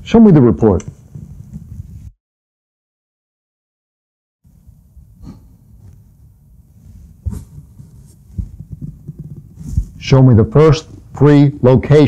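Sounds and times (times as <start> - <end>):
low irregular thumps: 5.7 - 10.2.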